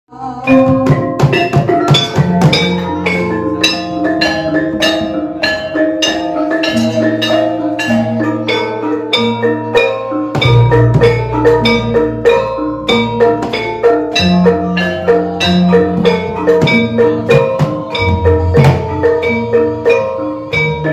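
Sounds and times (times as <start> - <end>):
gamelan ensemble playing: 0.2 - 20.9.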